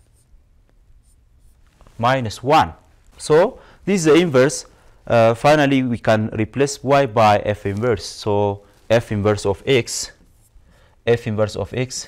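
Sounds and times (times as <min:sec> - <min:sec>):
low room hum: 0:00.0 - 0:12.0
stylus scratching on touchscreen: 0:01.0 - 0:01.7, 0:08.9 - 0:10.6.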